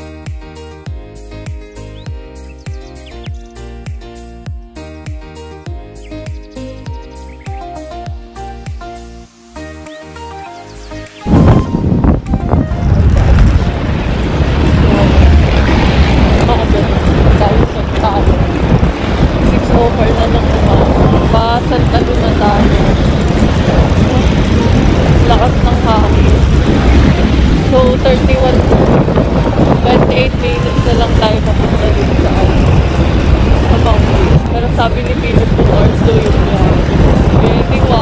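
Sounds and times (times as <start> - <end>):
road noise: 0.0 - 38.0
wind rush on microphone: 11.0 - 38.0
motorcycle engine: 12.7 - 38.0.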